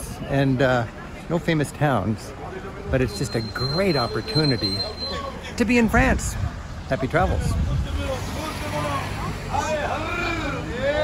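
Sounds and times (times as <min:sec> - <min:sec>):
low rumble of street noise: 0:00.0 - 0:11.0
people talking while walking: 0:00.0 - 0:11.0.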